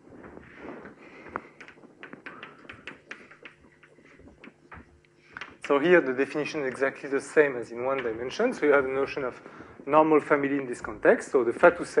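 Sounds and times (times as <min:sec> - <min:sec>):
chalk tapping on blackboard: 0:02.0 - 0:04.6.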